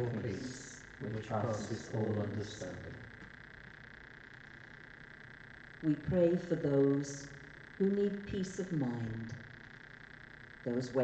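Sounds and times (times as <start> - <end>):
person speaking: 0.0 - 3.2
faint background hum and hiss: 0.0 - 11.0.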